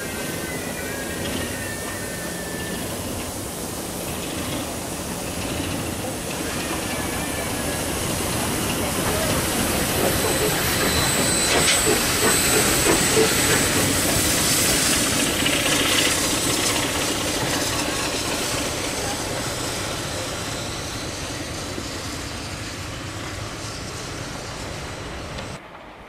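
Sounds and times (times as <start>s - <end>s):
steam hissing: 0.0s - 25.6s
steam train moving off: 0.0s - 26.0s.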